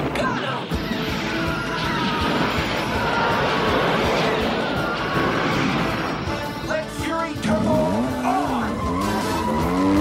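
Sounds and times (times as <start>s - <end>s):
cartoon explosions: 0.0s - 6.5s
action soundtrack music: 0.0s - 10.0s.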